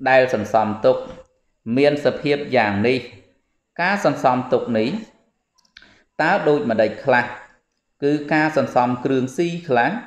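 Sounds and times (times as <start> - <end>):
man reading scripture aloud: 0.0 - 5.1, 6.2 - 10.0.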